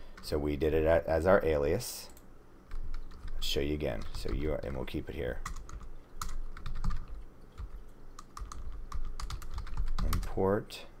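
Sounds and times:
keyboard typing clicks: 0:05.4 - 0:10.3.

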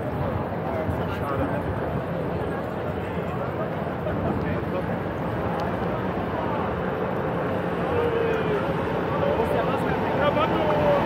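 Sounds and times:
low street rumble: 0:00.0 - 0:11.0
people's voices: 0:00.0 - 0:11.0.

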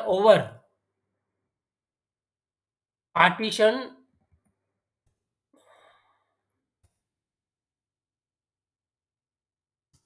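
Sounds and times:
faint exhaled breath: 0:05.6 - 0:06.4.

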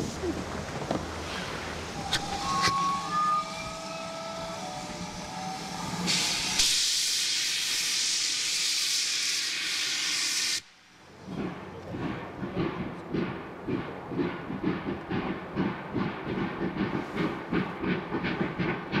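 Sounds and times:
steam hissing from locomotive: 0:01.2 - 0:11.5
steam locomotive whistle: 0:02.0 - 0:08.4.

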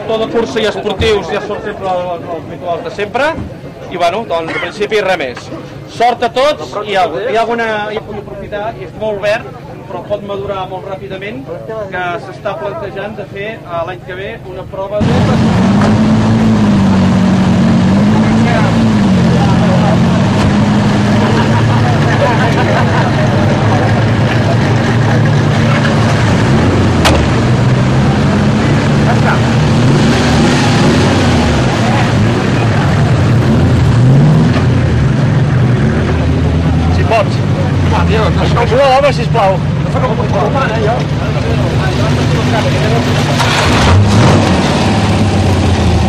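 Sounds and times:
voices: 0:00.0 - 0:33.6, 0:34.5 - 0:46.0
engine revving: 0:15.0 - 0:46.0.

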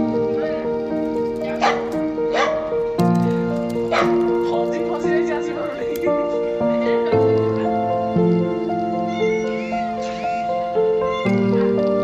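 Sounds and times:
background music: 0:00.0 - 0:12.0
dog barking: 0:01.4 - 0:02.7, 0:03.9 - 0:04.2.

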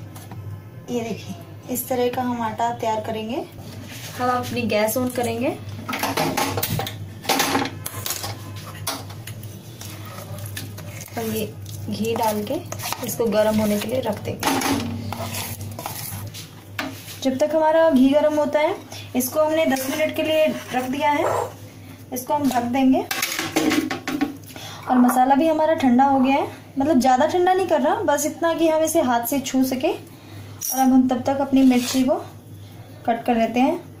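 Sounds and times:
low steady hum: 0:00.0 - 0:23.1.

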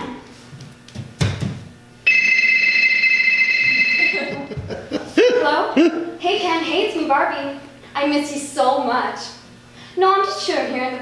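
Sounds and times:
high two-tone phone ring: 0:02.1 - 0:04.5.

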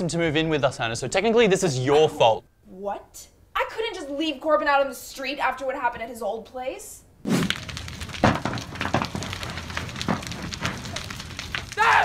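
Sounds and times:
flames cracking and popping: 0:07.2 - 0:12.0
house fire burning: 0:07.2 - 0:12.0.

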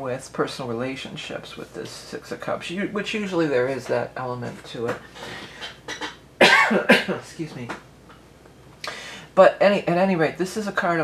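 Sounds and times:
woman coughing: 0:05.6 - 0:07.2.

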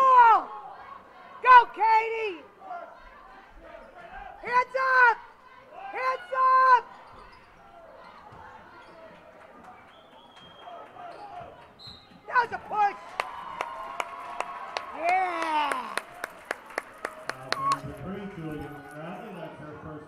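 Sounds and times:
high-pitched shouts: 0:12.3 - 0:16.3.

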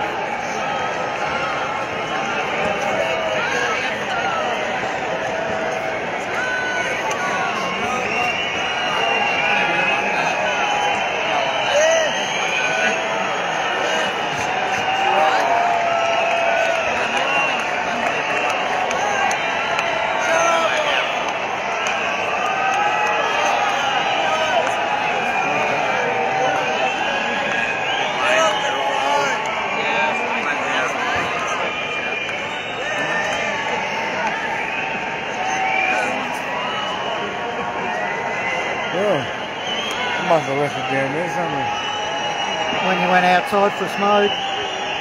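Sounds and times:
crowd cheering: 0:00.0 - 0:45.0
crowd voices talking and calling: 0:00.0 - 0:45.0.

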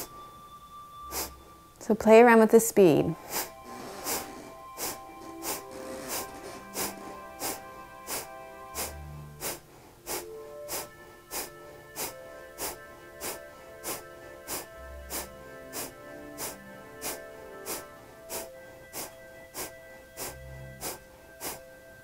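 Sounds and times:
soft background music: 0:00.0 - 0:22.0
forceful nasal exhales: 0:01.1 - 0:01.4, 0:03.2 - 0:21.8.

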